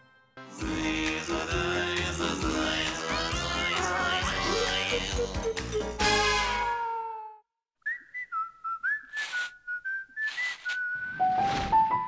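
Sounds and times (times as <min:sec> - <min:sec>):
whistled jingle: 0:07.9 - 0:11.4.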